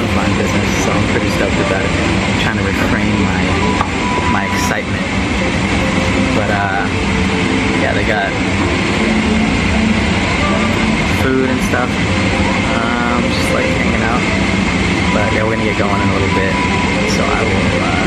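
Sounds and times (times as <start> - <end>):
airliner cabin hum and hiss: 0.0 - 18.0
murmur of voices: 0.0 - 18.0.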